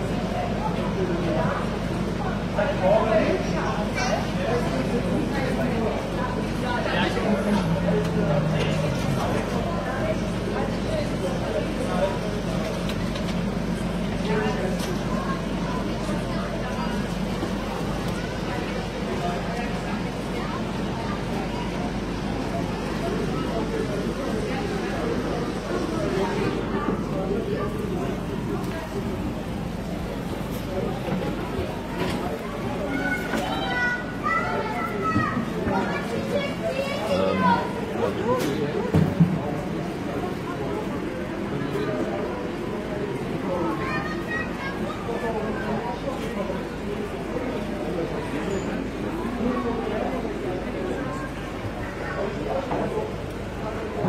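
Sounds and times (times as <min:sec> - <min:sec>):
children talking and calling out: 0:00.0 - 0:54.0
faint indistinct voices: 0:00.0 - 0:54.0.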